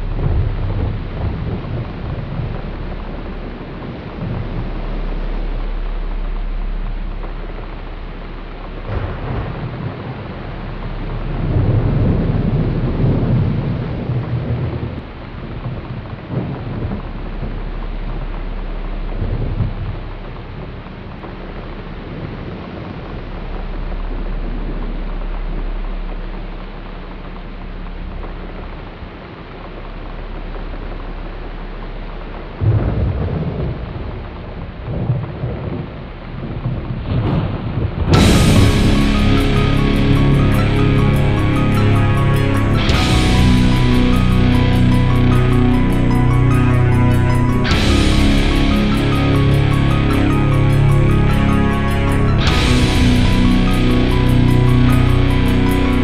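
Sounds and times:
low roll of thunder: 0:00.0 - 0:56.0
rain falling steadily: 0:00.0 - 0:56.0.

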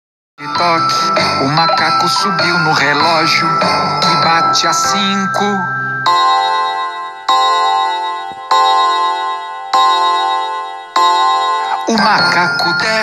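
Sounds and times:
children's song: 0:00.4 - 0:13.0
clock chime: 0:00.4 - 0:13.0.

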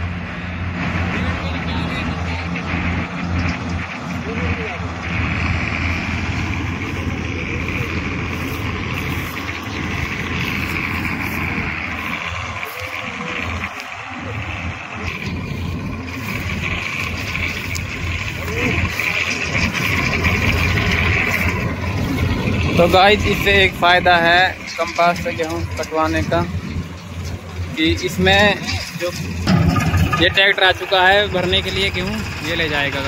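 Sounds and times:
combine harvester engine drone: 0:00.0 - 0:33.0
high steady whirring: 0:00.0 - 0:33.0.

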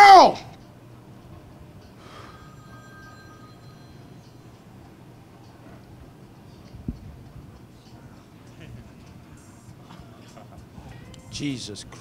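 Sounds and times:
faint breathy high tone: 0:02.0 - 0:04.4.

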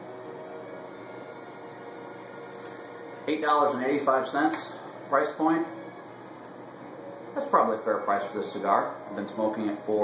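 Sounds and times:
faint hum: 0:00.0 - 0:10.0.

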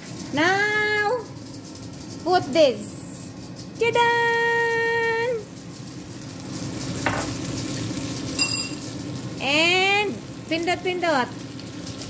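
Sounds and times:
batter sizzling in oil: 0:00.0 - 0:12.0
light clinks: 0:08.4 - 0:08.9.

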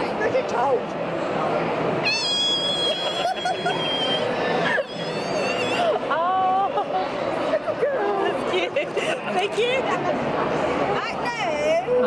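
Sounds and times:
crowd chatter: 0:00.0 - 0:12.0
dog whining: 0:02.0 - 0:06.0.

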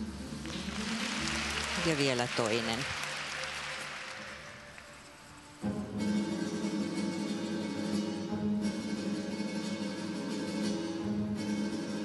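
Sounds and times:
guitar-led instrumental music: 0:04.6 - 0:12.0.

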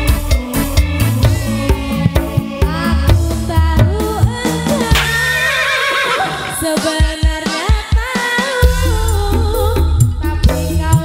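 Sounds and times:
hand drums: 0:00.8 - 0:05.5.

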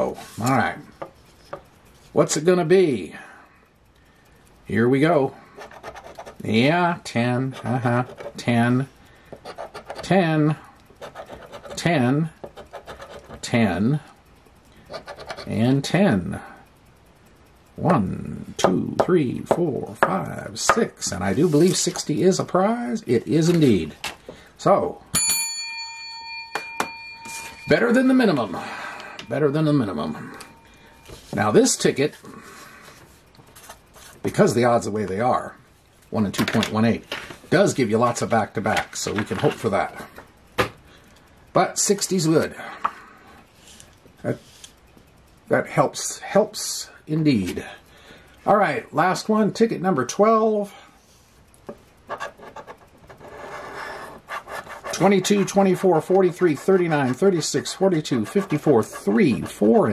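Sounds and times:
coin scraping lottery ticket: 0:11.0 - 0:11.9, 0:12.5 - 0:13.4, 0:14.9 - 0:15.6, 0:52.1 - 0:59.9
small bell ringing: 0:25.1 - 0:31.1.

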